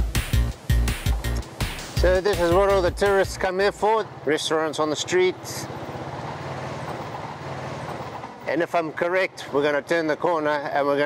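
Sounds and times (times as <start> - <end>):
scooter engine running: 0.2 - 8.9.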